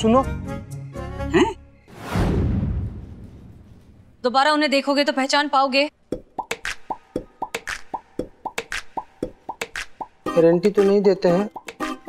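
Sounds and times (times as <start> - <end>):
bouncy comic music: 6.2 - 12.0.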